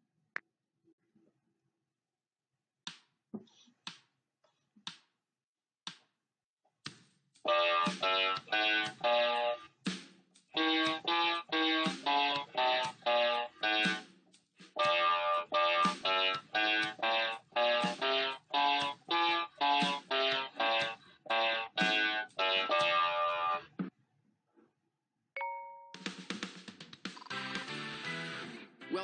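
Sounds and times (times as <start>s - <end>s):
electronic keyboard playing a scale: 7.5s - 9.6s, 10.6s - 14.0s, 14.8s - 23.6s.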